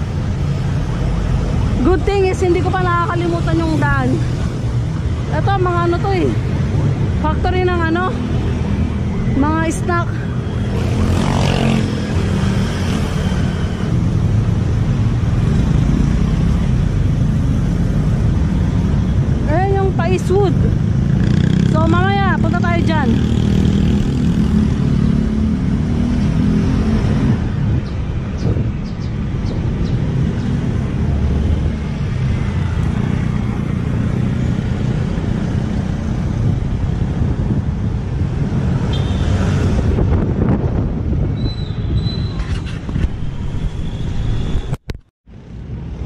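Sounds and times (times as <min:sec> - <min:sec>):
street traffic: 0:00.0 - 0:46.0
wind on microphone: 0:26.2 - 0:31.7, 0:35.2 - 0:44.9.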